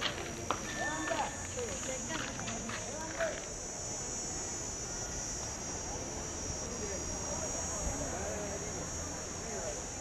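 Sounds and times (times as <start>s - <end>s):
insects chorus: 0.0s - 10.0s.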